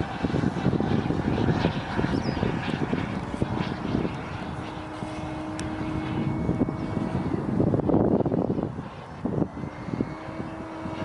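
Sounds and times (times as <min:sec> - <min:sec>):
jet aircraft flying overhead: 0:00.0 - 0:11.0.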